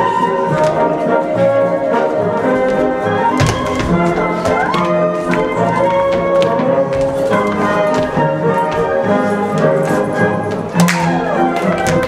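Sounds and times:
instrumental folk dance music: 0:00.0 - 0:12.0.

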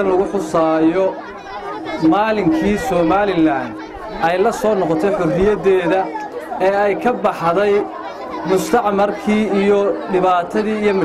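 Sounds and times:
man speaking into a microphone: 0:00.0 - 0:01.2, 0:02.0 - 0:11.0.

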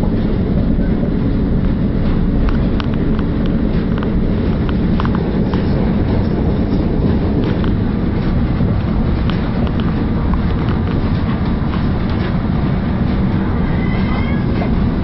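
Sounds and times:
train wheels rumbling on rails: 0:00.0 - 0:15.0.

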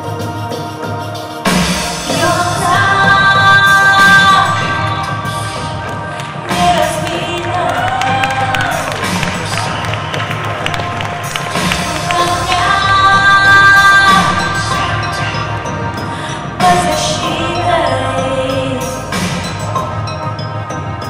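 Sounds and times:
live concert music: 0:00.0 - 0:21.0
audience cheering: 0:06.6 - 0:12.8.

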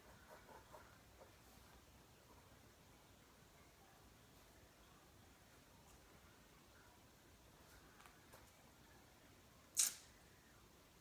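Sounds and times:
pen scratching on paper: 0:00.0 - 0:01.4.

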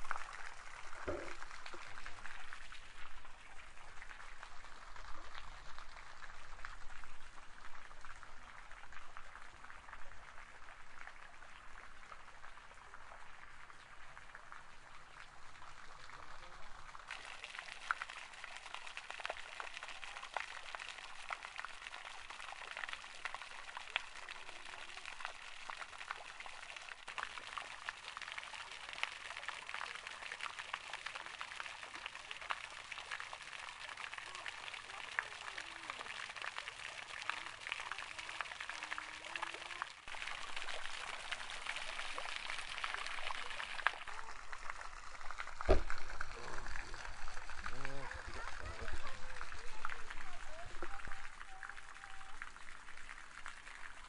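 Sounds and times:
fountain water splashing into pond: 0:00.0 - 0:54.0.

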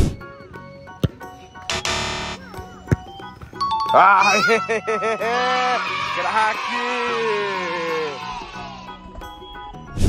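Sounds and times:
background music: 0:00.0 - 0:10.0
harsh buzzing tone: 0:01.7 - 0:02.5.

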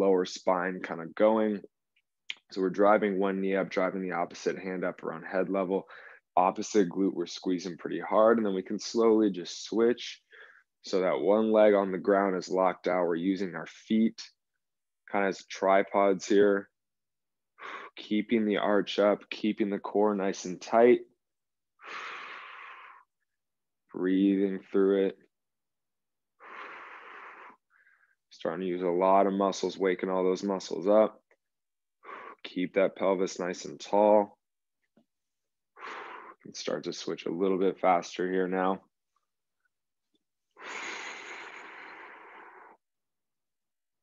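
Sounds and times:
person exhaling through mouth: 0:40.6 - 0:42.8.

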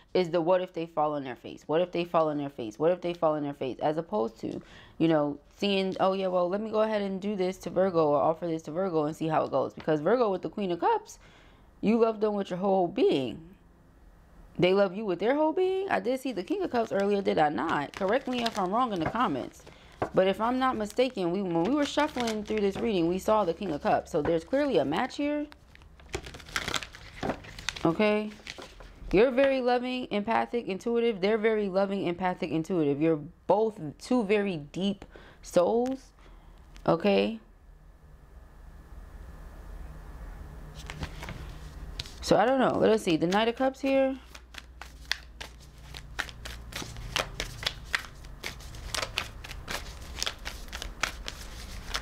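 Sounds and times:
cards rustling and clicking: 0:16.5 - 0:24.8, 0:25.5 - 0:29.0, 0:40.8 - 0:42.2, 0:43.3 - 0:52.0.

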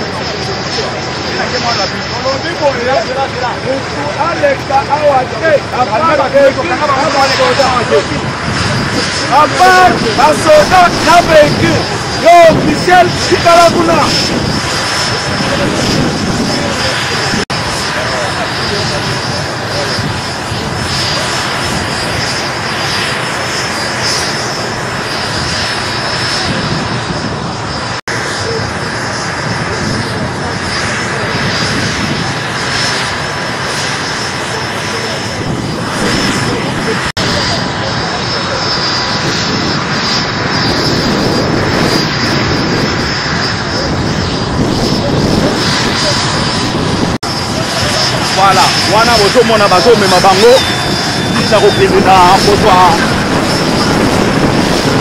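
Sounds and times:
crowd voices: 0:00.0 - 0:55.0
helicopter turbine engines: 0:00.0 - 0:55.0.

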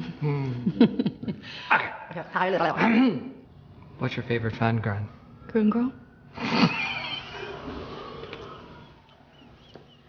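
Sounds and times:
people stifled laughter: 0:06.4 - 0:07.7.

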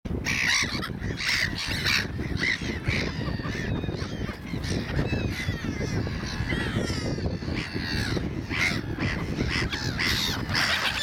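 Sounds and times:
gulls calling harshly: 0:00.1 - 0:11.0.

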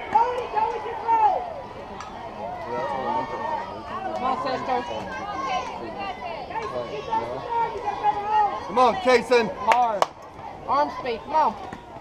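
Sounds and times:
players and spectators calling out: 0:00.0 - 0:12.0.

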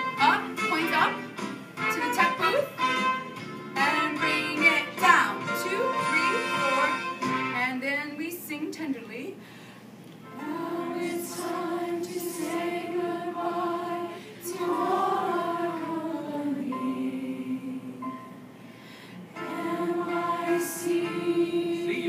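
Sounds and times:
choir singing held notes: 0:10.2 - 0:18.6, 0:19.3 - 0:22.0.

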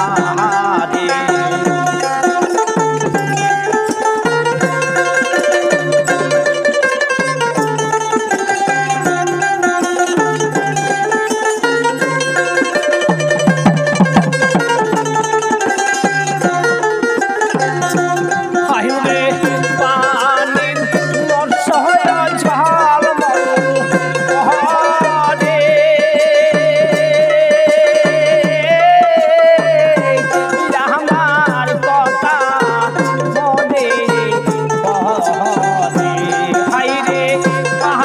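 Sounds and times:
hand drum beat: 0:00.0 - 0:38.0
plucked lute melody: 0:00.0 - 0:38.0.

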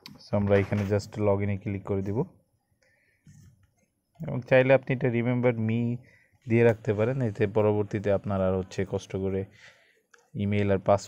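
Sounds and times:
man speaking: 0:00.0 - 0:02.4, 0:04.2 - 0:09.6, 0:10.3 - 0:11.0.

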